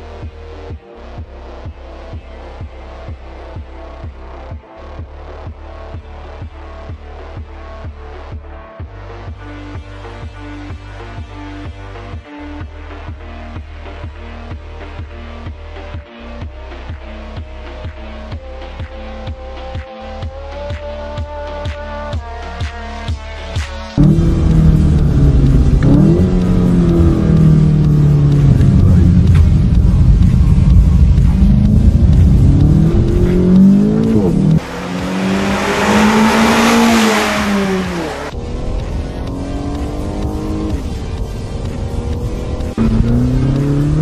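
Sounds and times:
car engine revving: 24.0s - 44.0s
electronic music: 24.0s - 44.0s.

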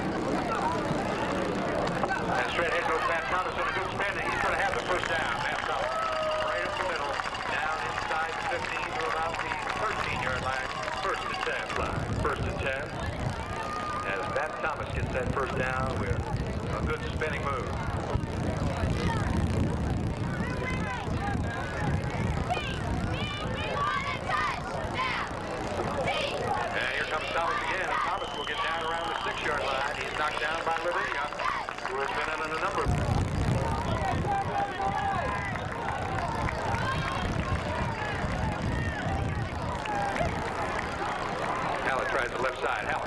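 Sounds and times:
low rumble on microphone: 0.0s - 43.0s
spectators chatting: 0.0s - 43.0s.

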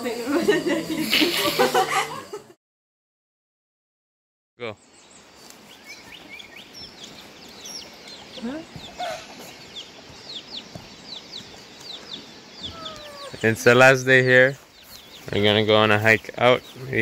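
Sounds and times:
chickens clucking and squawking: 0.0s - 2.5s, 6.1s - 17.0s.

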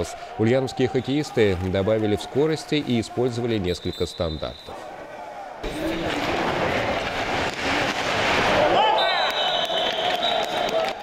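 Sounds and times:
skates and sticks scraping ice: 5.7s - 10.9s.

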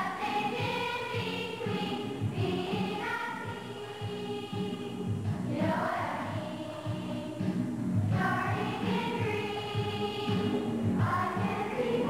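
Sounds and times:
choir singing in unison: 0.0s - 12.0s.

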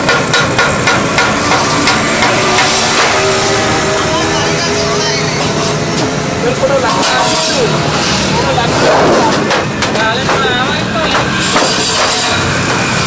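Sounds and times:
traffic noise: 0.0s - 13.0s
people talking: 3.9s - 12.5s.

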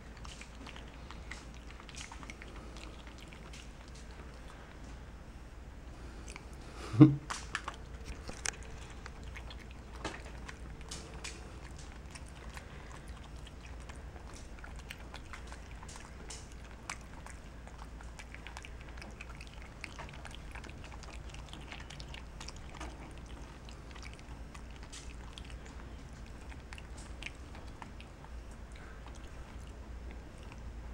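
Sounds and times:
monkey chewing: 0.0s - 5.2s, 5.8s - 30.9s.

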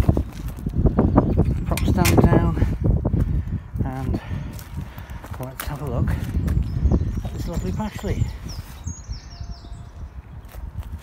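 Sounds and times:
bird chirping: 6.4s - 10.5s.

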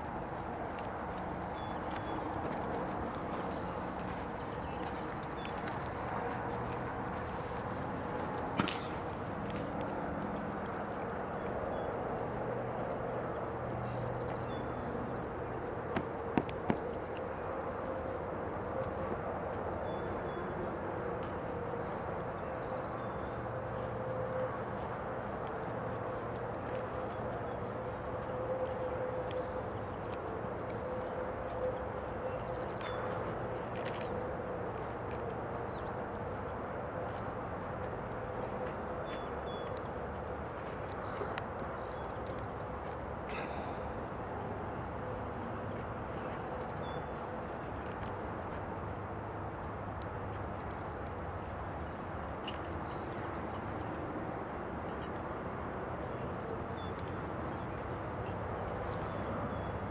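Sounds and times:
outdoor background noise: 0.0s - 59.9s
horse tack clicking: 15.9s - 17.2s.

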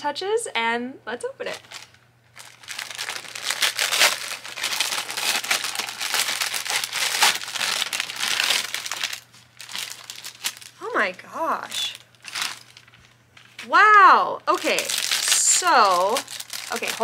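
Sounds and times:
wrapping paper tearing and crinkling: 1.5s - 10.8s, 11.6s - 13.7s, 14.5s - 17.0s.

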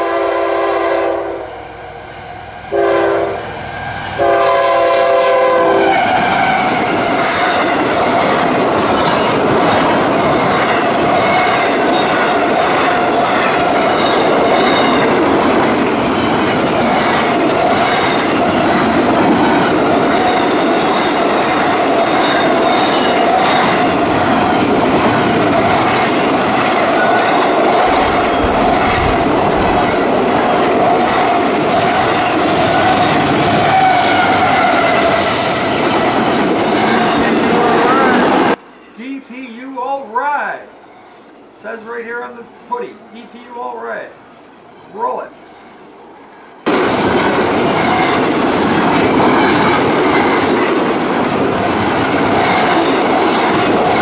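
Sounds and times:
locomotive air horn: 0.0s - 1.7s, 2.6s - 6.2s
train wheels clattering: 6.6s - 38.6s, 46.7s - 54.0s.

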